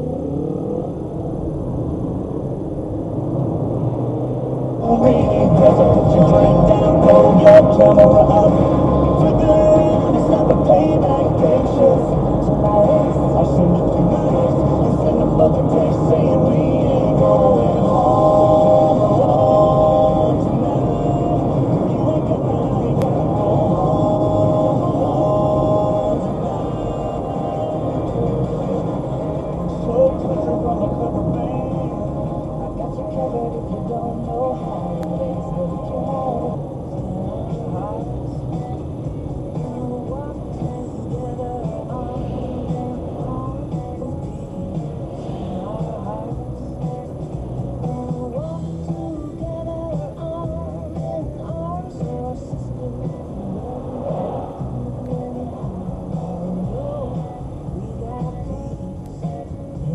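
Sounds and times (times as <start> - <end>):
music on car audio: 0.0 - 59.9
road and engine rumble: 0.0 - 59.9.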